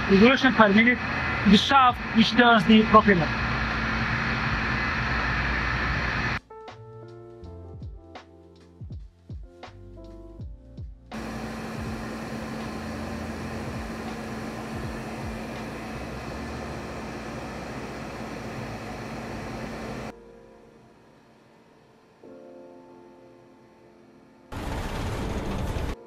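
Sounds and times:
engine room machinery rushing: 0:00.0 - 0:06.4, 0:11.1 - 0:20.1, 0:24.5 - 0:26.0
steady machinery hum: 0:00.0 - 0:06.4, 0:11.1 - 0:20.1
music: 0:06.4 - 0:26.0.

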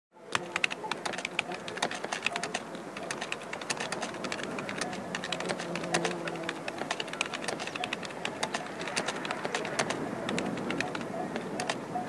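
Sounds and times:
typing on computer keyboard: 0:00.3 - 0:11.8.

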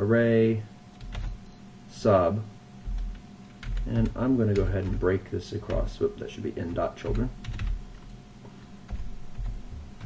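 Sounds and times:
computer keyboard keystrokes: 0:01.0 - 0:01.4, 0:02.9 - 0:05.0, 0:05.7 - 0:06.0, 0:06.7 - 0:08.0.

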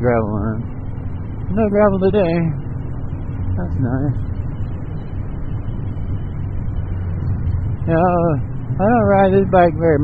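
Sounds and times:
road and wind noise: 0:00.0 - 0:10.0.

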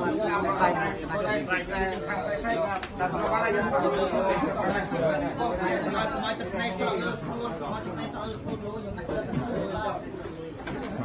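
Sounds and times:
people talking in low chatter: 0:00.0 - 0:11.0.

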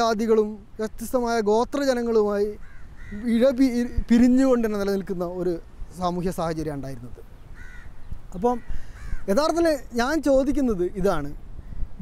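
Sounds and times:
man speaking: 0:00.0 - 0:02.6, 0:03.2 - 0:07.3, 0:08.3 - 0:08.7, 0:09.3 - 0:11.4
bird calling: 0:00.0 - 0:12.0.

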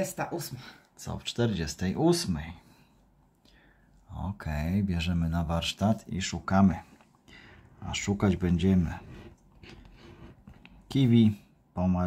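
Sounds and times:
person talking: 0:00.0 - 0:02.6, 0:07.8 - 0:09.3, 0:10.8 - 0:12.0
scratch card scratching: 0:08.5 - 0:10.8.

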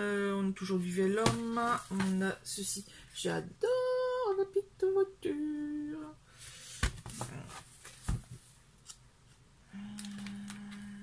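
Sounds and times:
paper rustling: 0:06.5 - 0:09.0
woman humming: 0:09.7 - 0:11.0.

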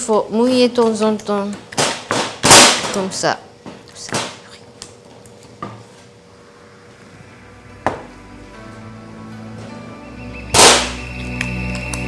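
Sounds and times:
wooden stick pounding dough: 0:00.8 - 0:03.2.

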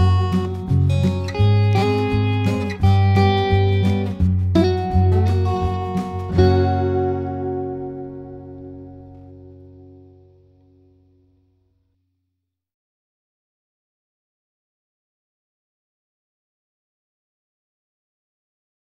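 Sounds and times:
instrumental music with plucked notes: 0:00.0 - 0:11.4.

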